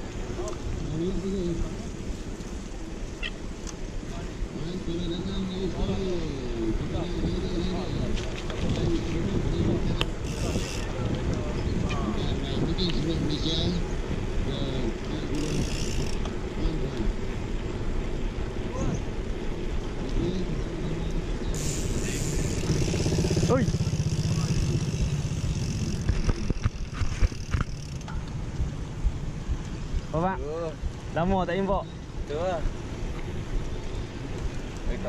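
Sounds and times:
bicycle tyre rolling on tarmac: 0.0 - 35.0
wind buffeting: 0.0 - 35.0
faint voices: 4.0 - 17.2.

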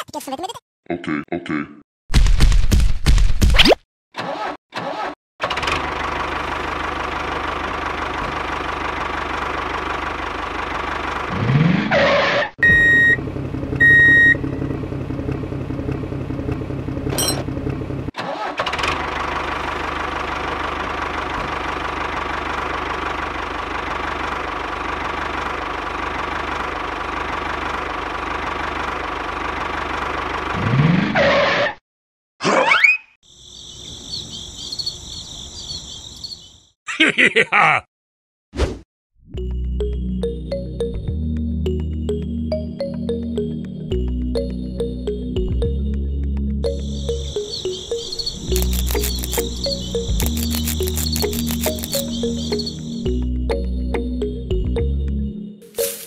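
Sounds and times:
short beeps: 12.6 - 13.2
toy tractor engine running: 48.3 - 52.8.

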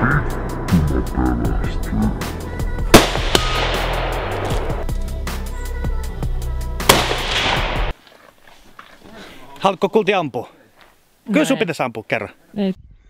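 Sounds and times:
background music with steady beat: 0.0 - 7.9
rifle shots: 2.9 - 4.8, 6.9 - 7.9.

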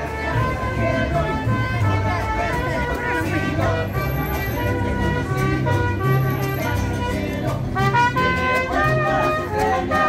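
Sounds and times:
mariachi band playing: 0.0 - 10.0.

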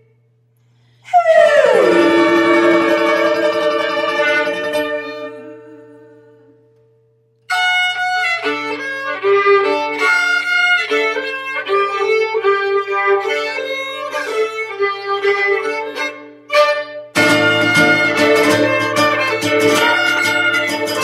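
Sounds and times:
violin melody: 1.8 - 6.1, 7.5 - 21.0.

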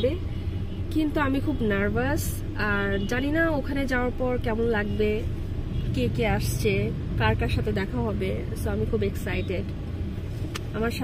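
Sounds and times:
woman talking: 0.0 - 0.2, 0.9 - 5.3, 6.0 - 9.7, 10.7 - 11.0.

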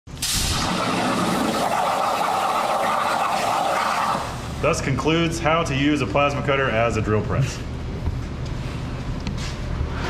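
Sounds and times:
plasma torch hissing: 0.1 - 4.6.

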